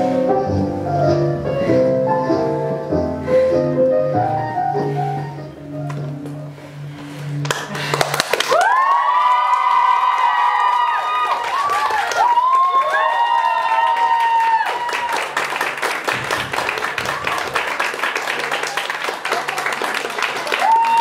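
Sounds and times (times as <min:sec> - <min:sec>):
piano music: 0:00.0 - 0:07.5
audience clapping: 0:07.4 - 0:21.0
crowd cheering and whooping: 0:08.4 - 0:21.0.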